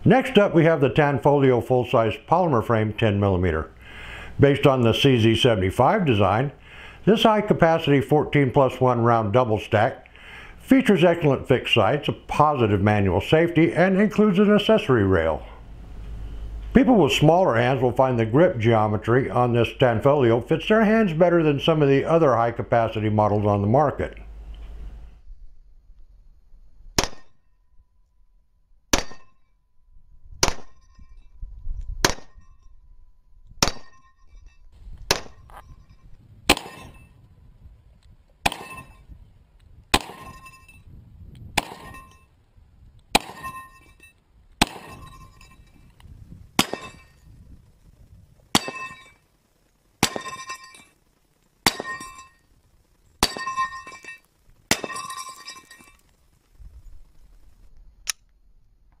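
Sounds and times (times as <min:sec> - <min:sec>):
pistol shots: 0:27.0 - 0:27.4, 0:28.9 - 0:29.4, 0:30.4 - 0:30.8, 0:32.0 - 0:32.4, 0:33.6 - 0:34.0, 0:35.1 - 0:35.5, 0:36.5 - 0:37.1, 0:38.4 - 0:39.0, 0:39.9 - 0:40.5, 0:41.6 - 0:42.2, 0:43.1 - 0:43.9, 0:44.6 - 0:45.3, 0:46.6 - 0:47.2, 0:48.5 - 0:49.1, 0:50.0 - 0:50.5, 0:51.6 - 0:52.2
steel plate target clanging: 0:29.0 - 0:29.5, 0:33.5 - 0:37.2, 0:38.5 - 0:39.2, 0:40.0 - 0:40.9, 0:41.6 - 0:42.3, 0:43.2 - 0:45.9, 0:46.6 - 0:47.3, 0:48.5 - 0:49.3, 0:50.0 - 0:51.0, 0:51.7 - 0:56.2.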